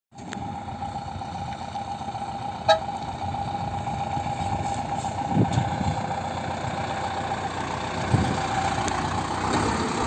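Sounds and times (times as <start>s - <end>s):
truck engine running low: 0.1s - 10.0s
short sharp horn toot: 2.7s - 2.9s.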